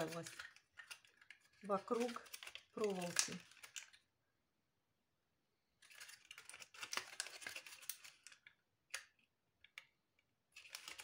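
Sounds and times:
plastic bottle crinkling: 0.0 - 4.1, 5.8 - 9.2, 10.5 - 11.0.

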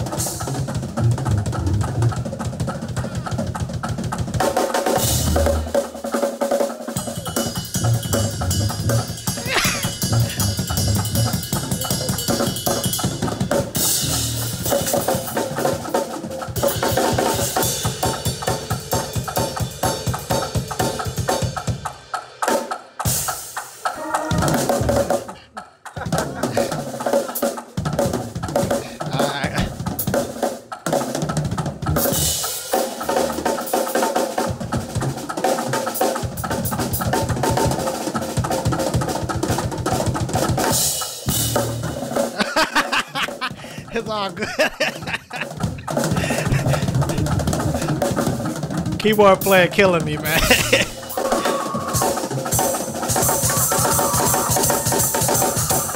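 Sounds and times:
drum kits playing fills: 0.0 - 55.9.

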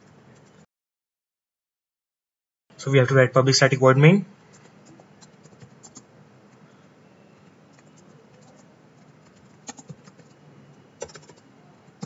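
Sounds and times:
typing on computer keyboard: 4.5 - 6.1, 7.4 - 10.4, 11.0 - 12.0.

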